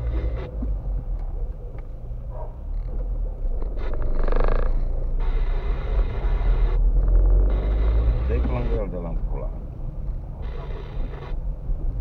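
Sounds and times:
car engine and tyres rumble: 0.0s - 12.0s.

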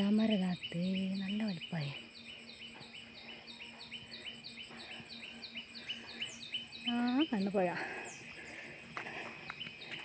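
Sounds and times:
bird chirping: 0.0s - 10.0s
high-pitched insect drone: 0.0s - 10.0s.

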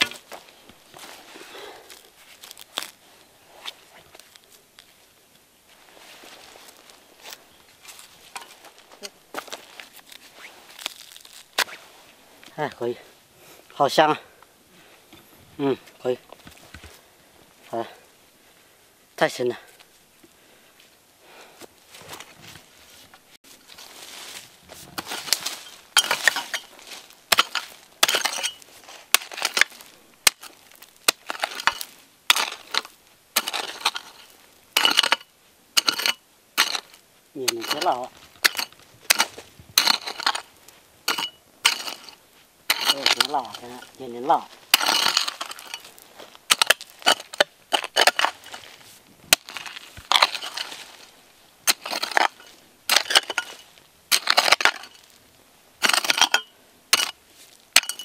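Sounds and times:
hoe digging into soil: 0.0s - 3.0s, 7.9s - 11.9s, 24.7s - 55.2s, 55.8s - 58.0s
clods of earth scattering: 5.8s - 12.9s, 23.7s - 58.0s.

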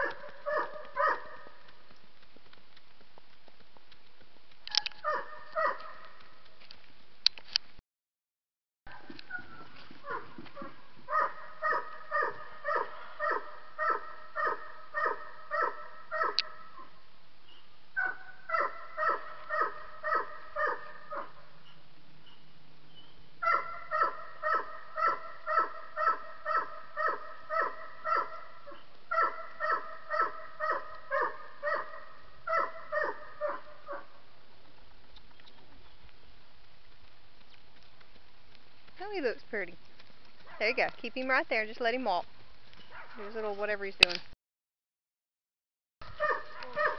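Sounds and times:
dog barking: 0.0s - 1.6s, 5.0s - 6.2s, 8.9s - 17.0s, 18.0s - 21.5s, 23.4s - 34.2s, 42.9s - 43.2s, 46.1s - 46.9s.

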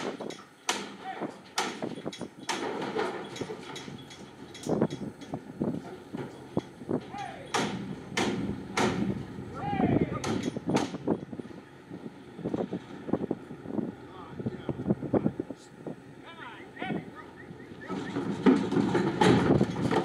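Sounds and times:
hooves banging on metal floor: 0.0s - 11.3s, 17.7s - 20.0s.

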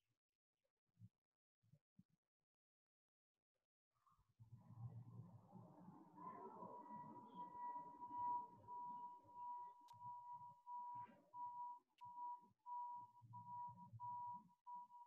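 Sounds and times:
faint whistle-like high tone: 6.2s - 15.0s.

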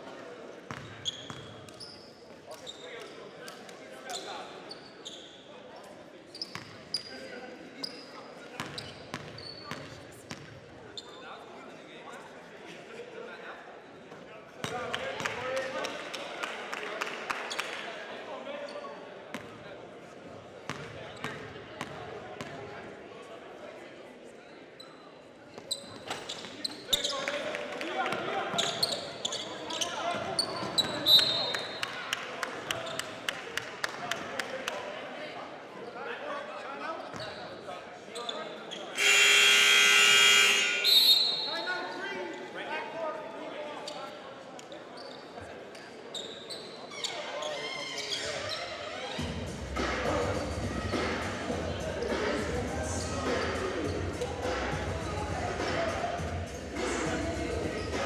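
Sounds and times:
scoreboard horn: 39.0s - 41.4s
scattered voices: 47.6s - 58.0s.

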